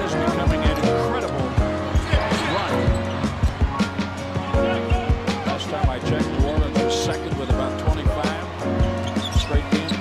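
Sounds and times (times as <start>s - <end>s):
arena music: 0.0s - 10.0s
crowd noise: 0.0s - 10.0s.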